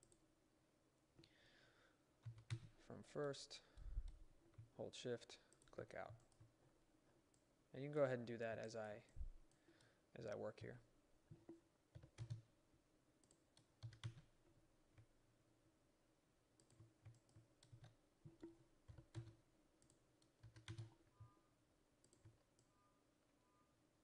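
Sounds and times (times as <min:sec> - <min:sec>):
keyboard key presses: 0:11.3 - 0:12.4, 0:13.2 - 0:14.3, 0:16.6 - 0:21.0
computer mouse clicks: 0:13.2 - 0:14.3, 0:16.6 - 0:21.4, 0:22.0 - 0:22.7.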